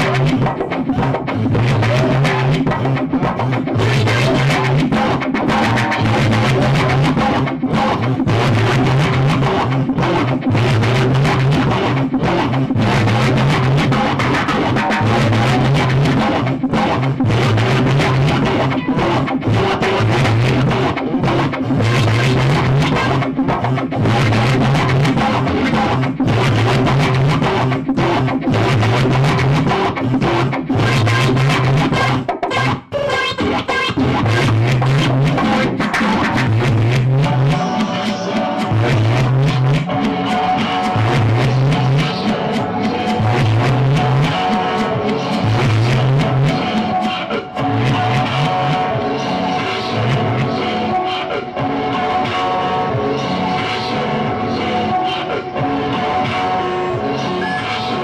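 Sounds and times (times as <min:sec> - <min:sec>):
electronic noise music: 0:00.0 - 0:58.0
held synth tones: 0:56.7 - 0:58.0.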